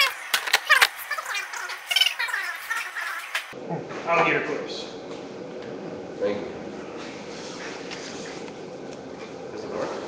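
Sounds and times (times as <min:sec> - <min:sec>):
high-pitched garbled warbling: 0:00.0 - 0:03.6.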